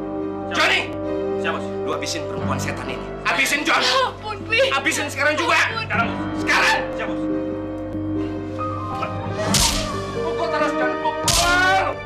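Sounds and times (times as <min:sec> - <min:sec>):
background music: 0:00.0 - 0:12.0
sharp whip-crack hit effect: 0:09.5 - 0:10.0, 0:11.3 - 0:11.6.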